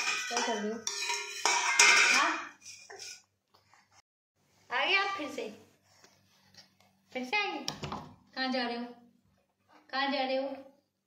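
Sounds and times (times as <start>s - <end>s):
metal plate banging on floor: 0.0s - 2.5s.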